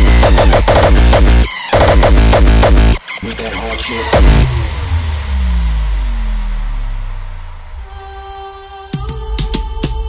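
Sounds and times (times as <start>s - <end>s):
heavy sub-bass drone: 0.0s - 7.9s.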